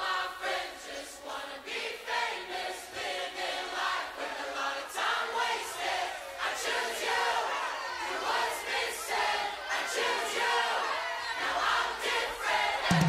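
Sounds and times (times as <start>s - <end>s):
choir singing: 0.0s - 13.0s.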